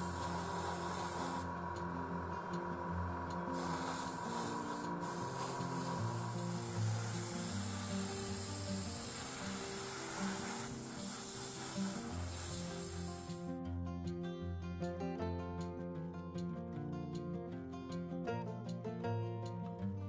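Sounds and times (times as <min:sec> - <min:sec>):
airbrush hissing: 0:00.0 - 0:13.5
background music: 0:00.0 - 0:20.0.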